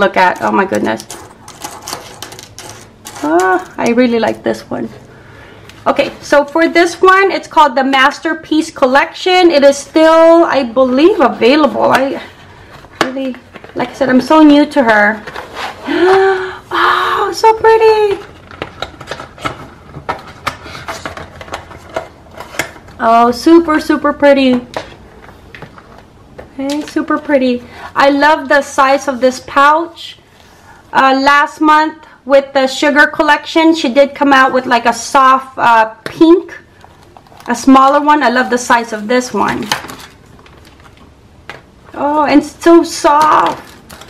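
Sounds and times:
packaging clicks and rustles: 0:00.2 - 0:03.8, 0:18.2 - 0:23.0, 0:36.7 - 0:41.7, 0:43.1 - 0:44.0.

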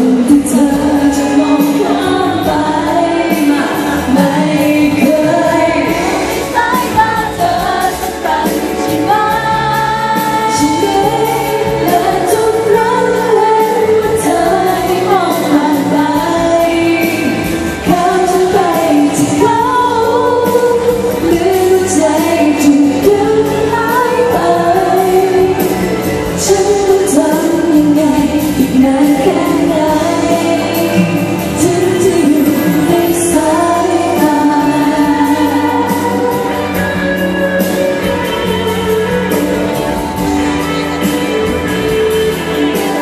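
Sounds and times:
band accompaniment: 0:00.0 - 0:43.0
woman singing pop ballad: 0:00.0 - 0:43.0.

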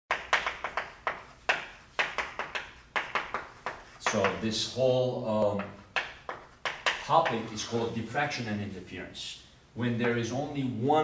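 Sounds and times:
chalk tapping on chalkboard: 0:00.1 - 0:04.7, 0:05.4 - 0:07.9.

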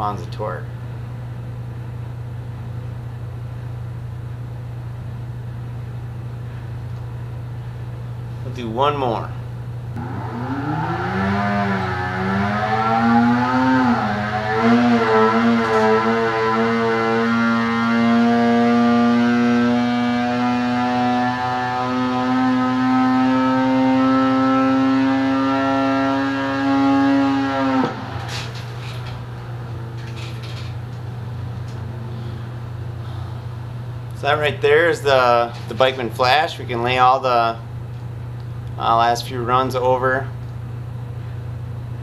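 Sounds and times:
snowmobile engine revving: 0:10.0 - 0:29.3.

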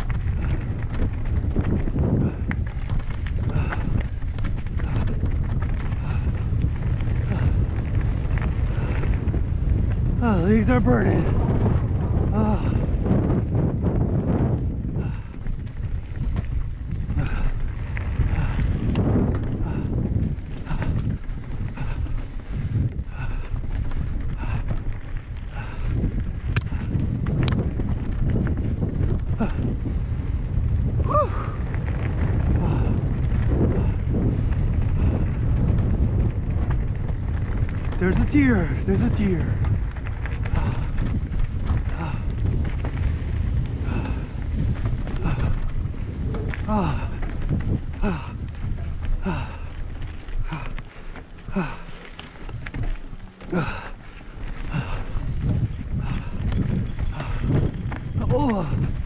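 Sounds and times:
bike tyres rattling over stones: 0:00.0 - 0:59.0
wind buffeting microphone: 0:00.0 - 0:59.0.

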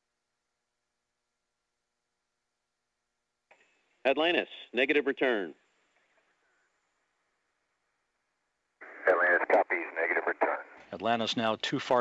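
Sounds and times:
voice over radio: 0:08.8 - 0:12.0.

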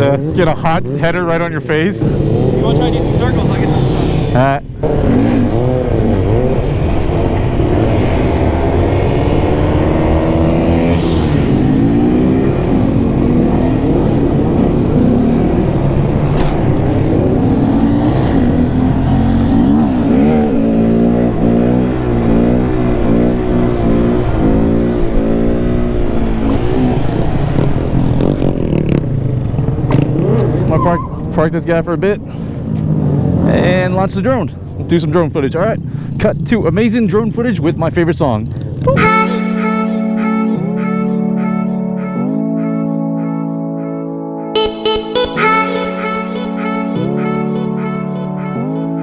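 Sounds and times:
motorcycle engine revving: 0:00.0 - 0:31.4.

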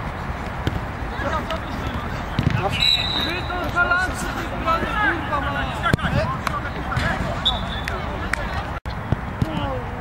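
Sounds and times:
players shouting: 0:01.1 - 0:08.8.

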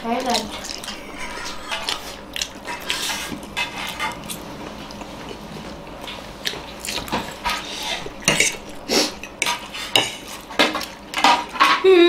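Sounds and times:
people eating: 0:00.0 - 0:12.0
forks clinking on plates: 0:08.2 - 0:08.7.

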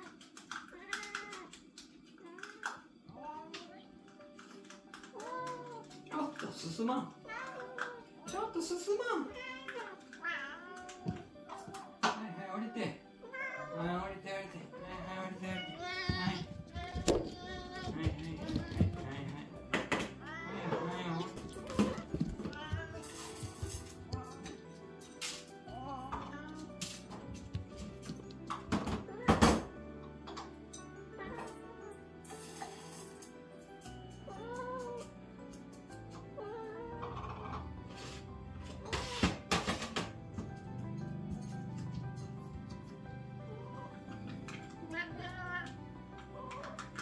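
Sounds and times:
soft background music: 0:00.0 - 0:47.0
young cat meowing: 0:00.7 - 0:01.5, 0:09.4 - 0:13.8.

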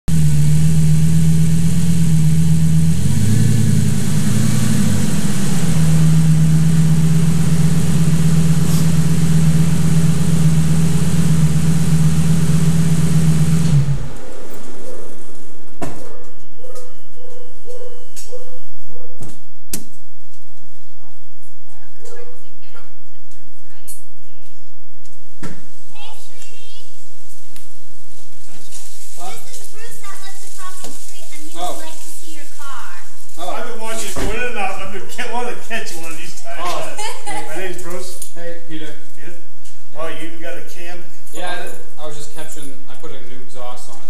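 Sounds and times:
engine revving: 0:00.0 - 0:16.1
sports car engine idling: 0:00.1 - 0:17.8, 0:28.4 - 0:44.0.

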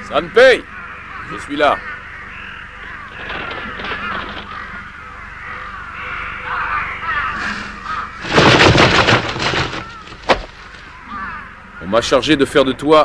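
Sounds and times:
crows cawing: 0:00.0 - 0:13.0.

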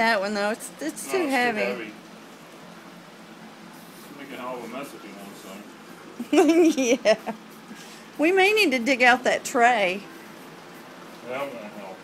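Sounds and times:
faint room noise hiss: 0:00.0 - 0:12.0.

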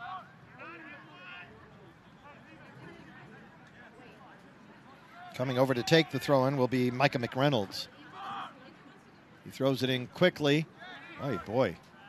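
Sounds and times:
low outdoor murmur: 0:00.0 - 0:12.0.

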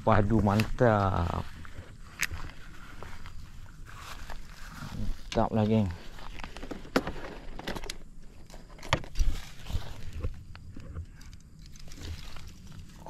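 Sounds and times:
fish handling clicks and rustles: 0:04.2 - 0:13.0.

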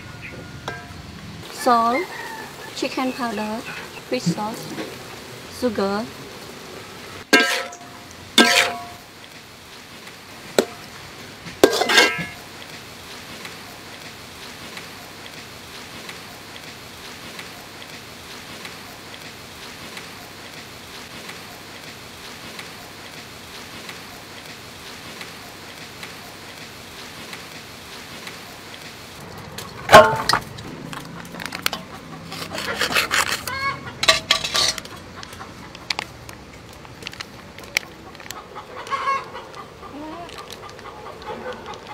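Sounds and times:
food sizzling in a wok: 0:00.4 - 0:32.2, 0:33.6 - 0:35.0
metal spatula clanking on wok: 0:07.3 - 0:09.0, 0:11.6 - 0:12.4, 0:29.9 - 0:30.6, 0:33.9 - 0:35.0.

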